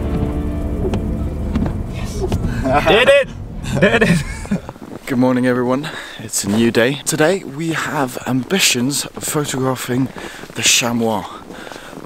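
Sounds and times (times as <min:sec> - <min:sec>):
road rumble inside moving car: 0:00.0 - 0:04.8.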